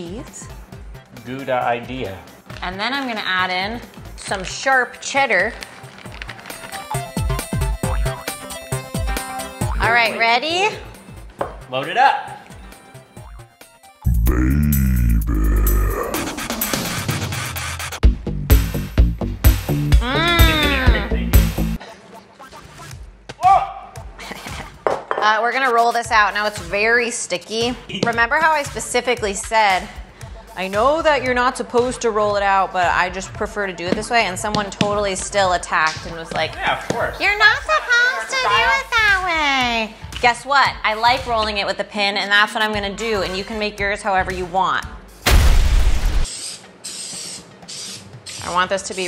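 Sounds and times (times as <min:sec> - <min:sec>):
explosion sound effect: 0:45.2 - 0:46.3
aerosol spray can hissing: 0:46.2 - 0:48.6.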